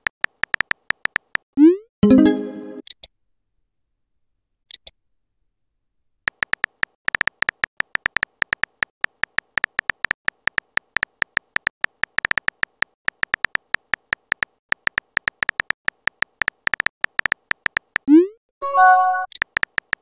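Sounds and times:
electronic keyboard typing clicks: 0.0s - 1.4s, 6.3s - 18.1s, 18.8s - 20.0s.

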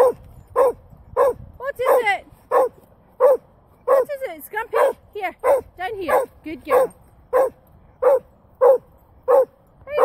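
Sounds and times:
dog barking: 0.0s - 4.1s, 4.7s - 10.0s.

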